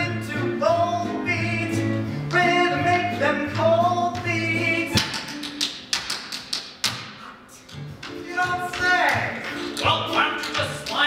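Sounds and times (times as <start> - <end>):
accompaniment music: 0.0 - 11.0
tap shoes striking stage floor: 1.7 - 11.0.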